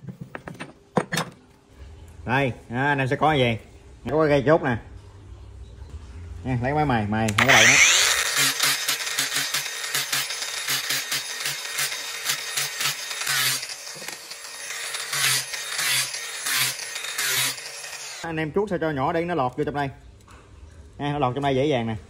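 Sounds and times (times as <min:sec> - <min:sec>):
angle grinder grinding wood: 0:07.3 - 0:18.3.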